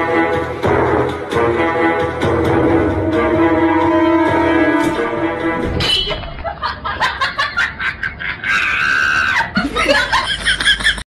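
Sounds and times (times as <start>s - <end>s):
people laughing: 6.1s - 11.0s
high-pitched scream: 8.5s - 9.6s.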